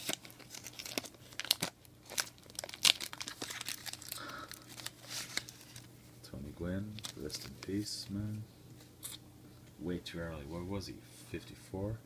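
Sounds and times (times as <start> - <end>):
foil wrapper crinkling: 0.0 - 5.9, 6.9 - 7.8.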